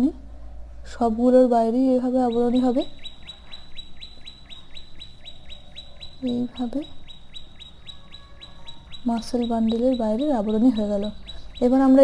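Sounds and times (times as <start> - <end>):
high falling chirps: 2.2 - 12.0.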